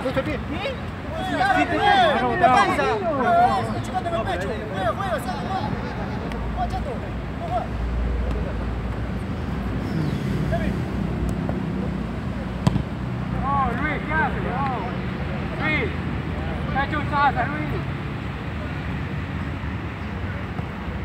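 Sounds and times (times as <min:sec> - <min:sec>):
footballers shouting: 0:00.0 - 0:09.2, 0:12.6 - 0:19.0
ball being kicked: 0:12.6 - 0:13.0.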